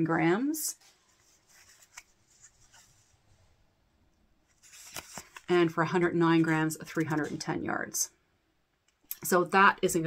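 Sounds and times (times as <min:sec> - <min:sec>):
faint rustling of paper and yarn: 0:00.3 - 0:03.7, 0:04.4 - 0:07.5.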